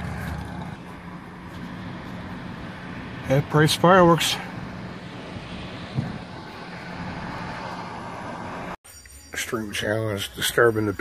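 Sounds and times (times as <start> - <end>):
car engine humming: 0.0 - 8.8.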